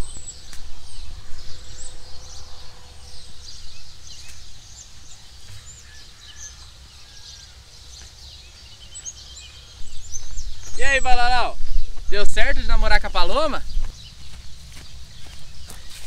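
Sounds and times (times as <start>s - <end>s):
wind rumble on microphone: 0.0s - 6.0s, 9.7s - 16.0s.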